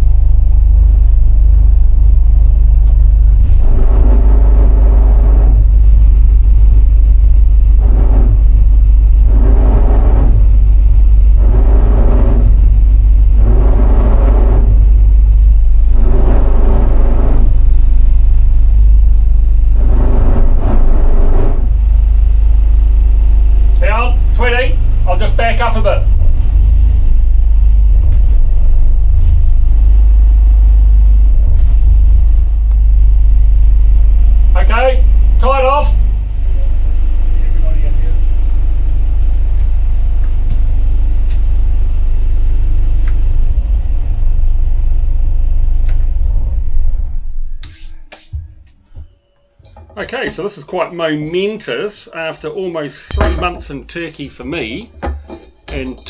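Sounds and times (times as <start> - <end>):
diesel engine rumbling: 0.0 - 56.0.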